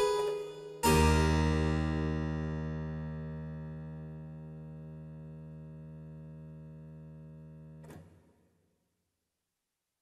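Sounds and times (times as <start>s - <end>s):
harpsichord chords: 0.0s - 7.8s.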